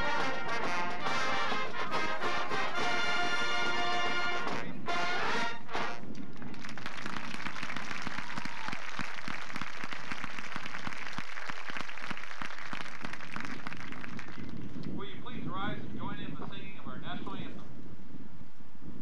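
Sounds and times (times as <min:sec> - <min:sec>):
marching band brass chords: 0:00.0 - 0:06.3
crowd applause: 0:06.3 - 0:14.6.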